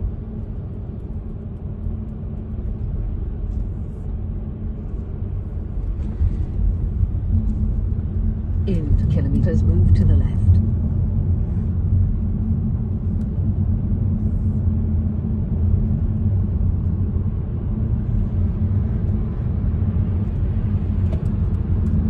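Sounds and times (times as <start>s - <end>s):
car interior road noise: 0.0s - 22.0s.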